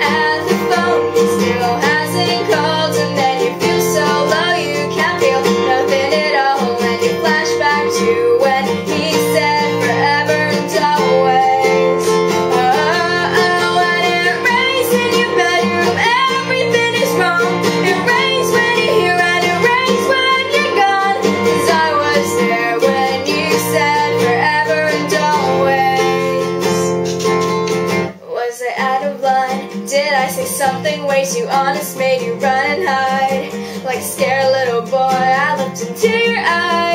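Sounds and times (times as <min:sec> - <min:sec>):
woman singing pop ballad: 0:00.0 - 0:27.3, 0:28.2 - 0:36.9
nylon-string acoustic guitar chords: 0:00.0 - 0:28.2.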